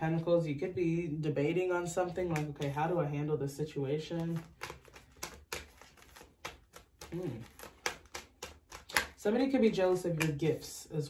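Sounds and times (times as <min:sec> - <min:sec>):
cards being shuffled: 0:04.1 - 0:10.9.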